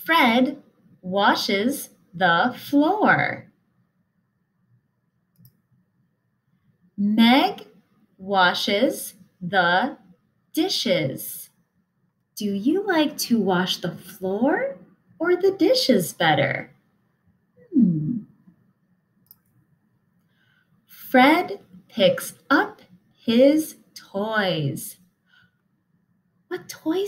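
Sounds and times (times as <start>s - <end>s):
computer mouse click: 5.3s - 5.6s, 19.2s - 19.6s.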